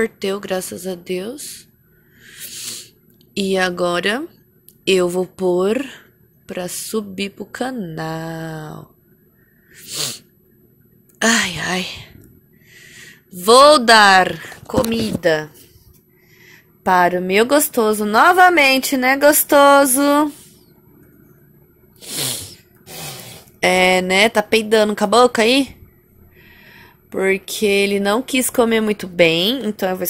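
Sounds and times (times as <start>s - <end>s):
baby blowing raspberries: 22.0s - 23.5s
person exhaling sharply: 22.0s - 23.5s.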